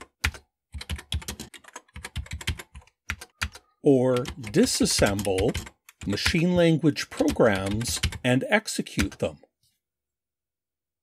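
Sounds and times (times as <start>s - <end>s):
man talking: 3.8s - 9.5s.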